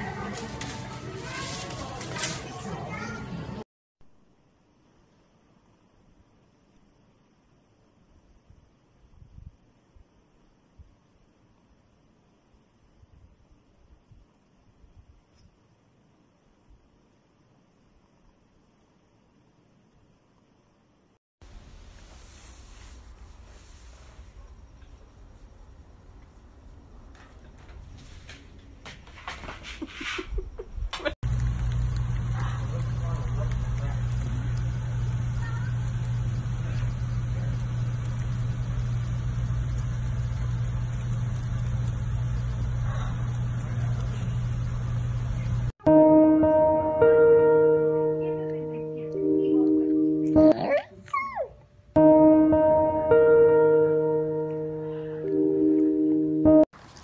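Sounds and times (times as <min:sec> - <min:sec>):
steady hiss: 0:21.4 - 0:30.7
background music: 0:45.8 - 0:50.9, 0:52.0 - 0:56.7
dog whining howl: 0:50.4 - 0:51.6.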